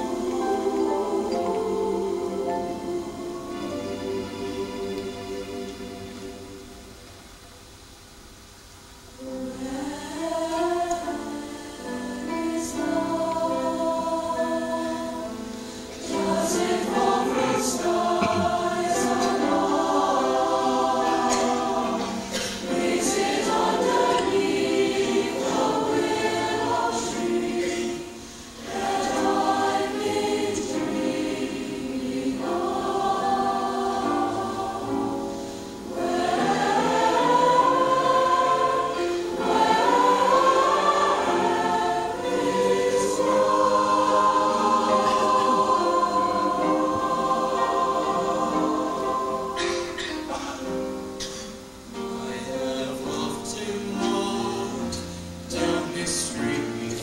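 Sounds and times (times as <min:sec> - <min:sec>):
mixed choir singing: 0:00.0 - 0:07.0, 0:09.2 - 0:57.0.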